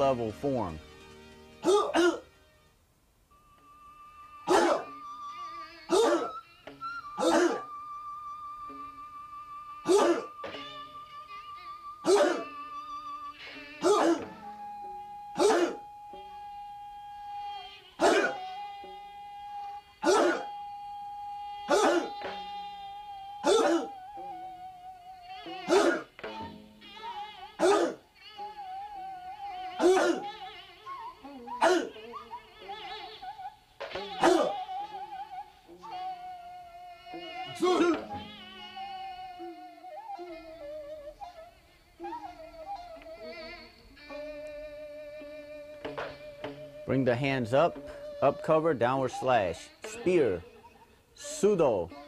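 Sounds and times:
background music with held tone: 0.0 - 52.0
group shouting in unison: 1.6 - 2.2, 4.5 - 4.9, 5.9 - 6.4, 7.2 - 7.7, 9.8 - 10.4, 12.1 - 12.5, 13.8 - 14.4, 15.4 - 15.9, 18.0 - 18.4, 20.0 - 20.6, 21.7 - 22.3, 23.4 - 24.0, 25.7 - 26.1, 27.6 - 28.0, 29.8 - 30.3, 31.6 - 31.9, 34.2 - 34.6, 37.6 - 38.1.

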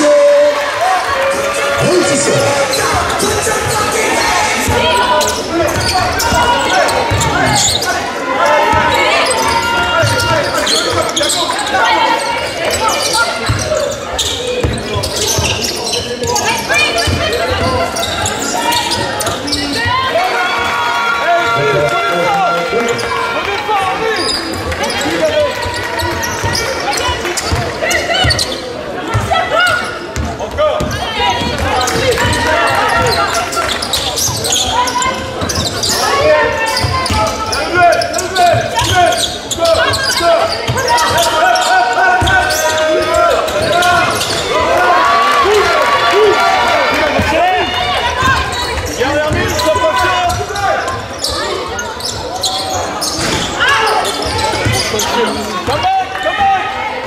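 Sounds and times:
voices in sports hall: 0.0 - 57.0.

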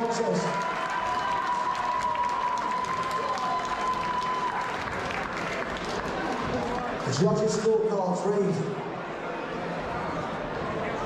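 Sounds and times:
crowd applauding: 0.0 - 7.6.

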